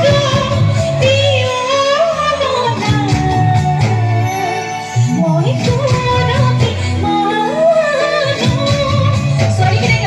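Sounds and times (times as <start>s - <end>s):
bass line: 0.0s - 10.0s
electric guitar: 0.0s - 10.0s
woman singing through microphone: 0.0s - 10.0s.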